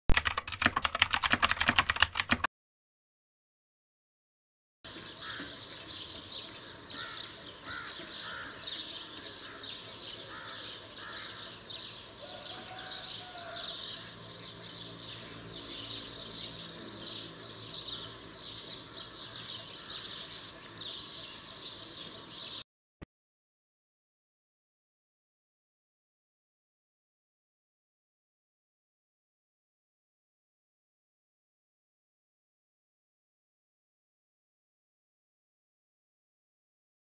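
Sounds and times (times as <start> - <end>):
lower repeated bird calls: 4.9 - 22.6
small birds chirping: 4.9 - 22.6.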